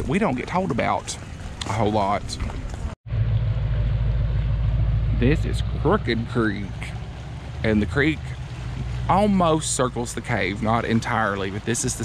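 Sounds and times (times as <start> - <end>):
creek water running: 0.0 - 12.0.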